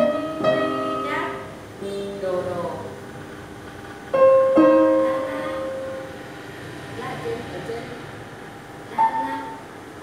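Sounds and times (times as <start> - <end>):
digital piano chord: 0.0 - 1.6, 4.1 - 6.2
low room noise: 0.0 - 10.0.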